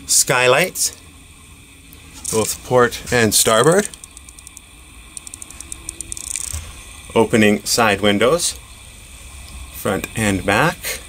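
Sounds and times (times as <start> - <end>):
ratchet-like clicks: 3.8 - 6.6.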